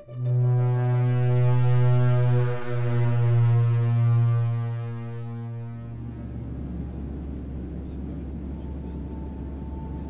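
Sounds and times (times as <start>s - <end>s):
low synthesizer drone: 0.0s - 8.6s.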